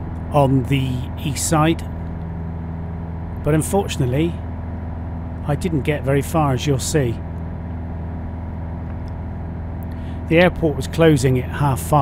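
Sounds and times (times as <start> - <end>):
light aircraft engine drone: 0.0 - 12.0.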